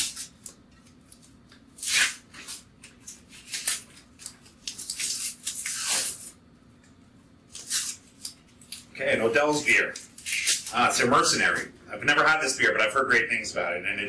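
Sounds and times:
paper wrapping tearing and crinkling: 0:00.0 - 0:06.4, 0:07.5 - 0:08.9, 0:09.6 - 0:10.9.

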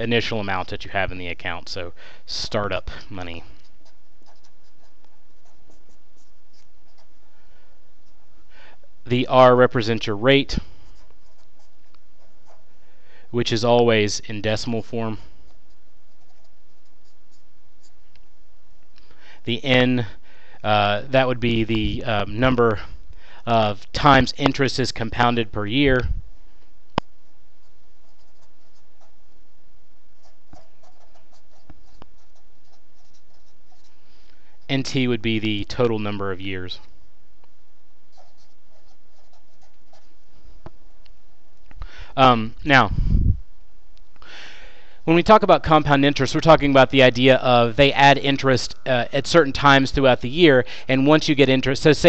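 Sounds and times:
low background hum: 0:00.0 - 0:52.0
marker writing on paper: 0:03.2 - 0:07.2, 0:10.7 - 0:12.8, 0:15.4 - 0:18.0, 0:27.6 - 0:29.2, 0:30.2 - 0:34.0, 0:38.1 - 0:40.8.

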